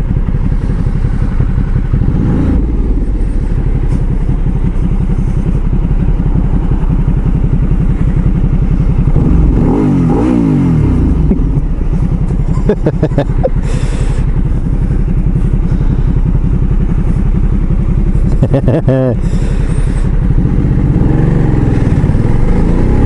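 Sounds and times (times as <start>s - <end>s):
motorcycle engine idling: 0.0s - 23.0s.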